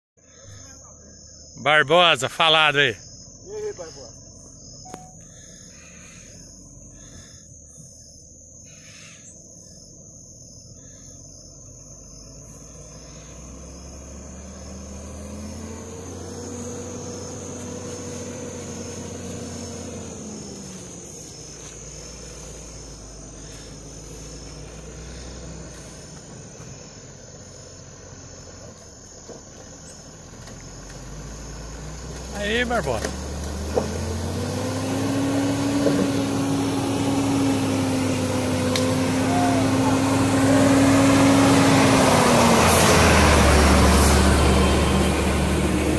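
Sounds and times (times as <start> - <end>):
distant diesel engine labouring: 0.2 - 45.9
high insect buzz: 3.0 - 30.0.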